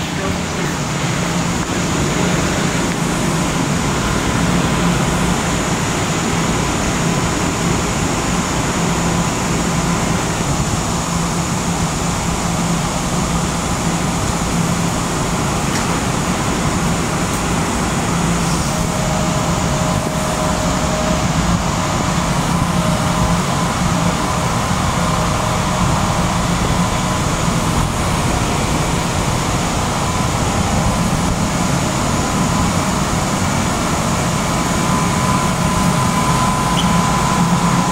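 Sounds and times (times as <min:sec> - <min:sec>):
electric train hum and rumble: 0:00.0 - 0:37.9.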